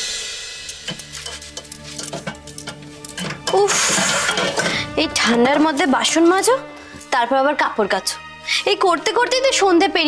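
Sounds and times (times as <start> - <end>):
metal plates and utensils clattering: 0.7 - 6.3.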